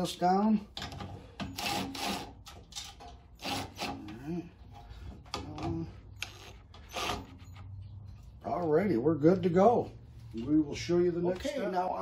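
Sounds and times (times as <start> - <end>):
cordless drill bursts: 1.4 - 2.4, 3.4 - 4.0, 6.2 - 7.4.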